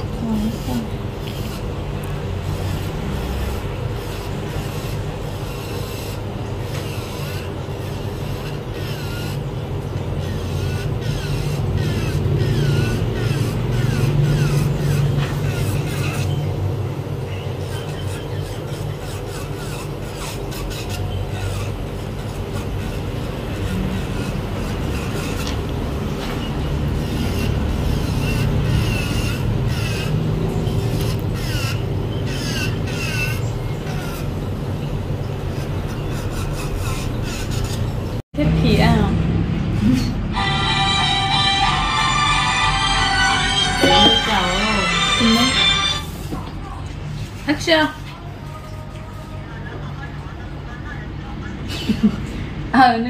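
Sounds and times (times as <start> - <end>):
electric nail drill grinding: 0.0 - 1.7, 2.4 - 9.5, 10.1 - 16.5, 17.8 - 34.4, 40.4 - 46.1
dust collector fan hum: 0.0 - 50.8.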